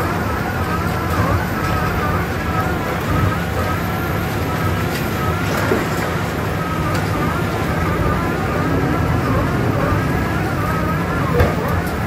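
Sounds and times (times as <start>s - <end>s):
wood shredder engine rumbling: 0.0s - 12.0s.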